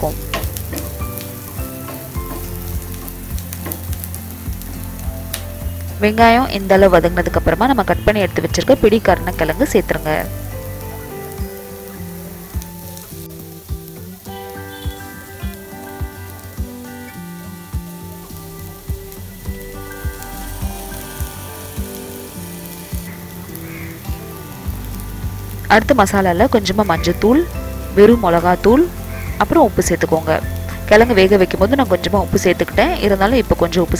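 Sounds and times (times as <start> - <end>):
background music with beat: 0.0 - 33.9
food sizzling in oil: 0.0 - 33.9.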